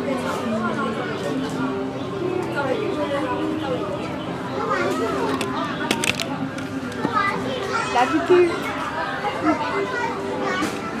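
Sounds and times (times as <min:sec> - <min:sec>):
crowd babble: 0:00.0 - 0:11.0
children's voices: 0:02.1 - 0:11.0.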